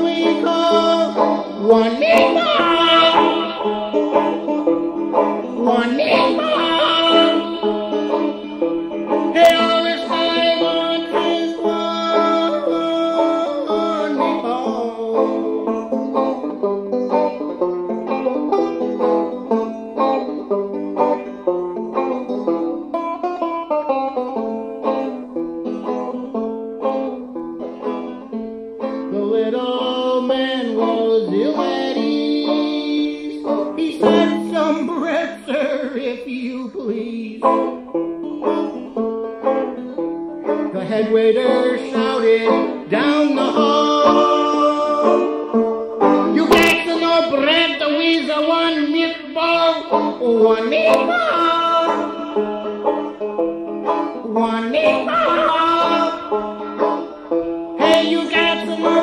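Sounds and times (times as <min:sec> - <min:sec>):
banjo plucking quick notes: 0:00.0 - 0:36.0, 0:36.9 - 0:59.0.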